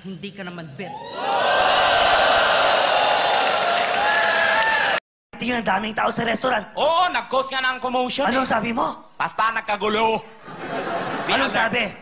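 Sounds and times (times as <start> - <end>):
crowd cheering: 0.9 - 5.0.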